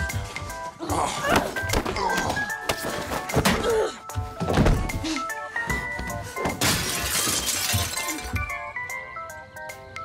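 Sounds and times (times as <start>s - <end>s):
background music: 0.0s - 10.0s
glass shattering: 6.5s - 8.4s.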